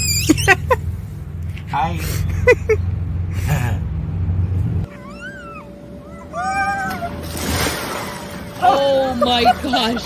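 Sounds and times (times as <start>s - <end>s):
high-pitched meow-like cries: 4.9s - 7.2s.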